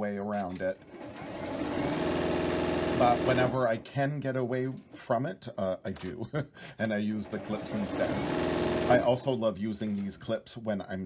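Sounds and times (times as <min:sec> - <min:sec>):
sewing machine stitching: 0:00.3 - 0:03.8, 0:06.9 - 0:09.2.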